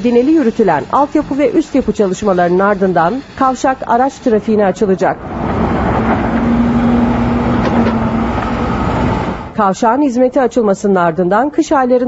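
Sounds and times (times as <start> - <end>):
machinery noise: 0.0 - 9.7
diesel engine running: 0.2 - 9.6.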